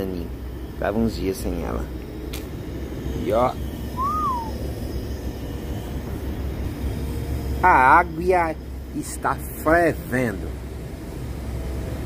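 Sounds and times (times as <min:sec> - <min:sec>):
short whistle-like note: 0:04.0 - 0:04.6.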